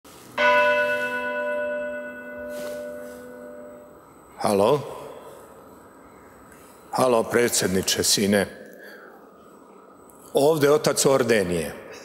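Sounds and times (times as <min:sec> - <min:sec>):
church bell ringing: 0:00.4 - 0:05.3.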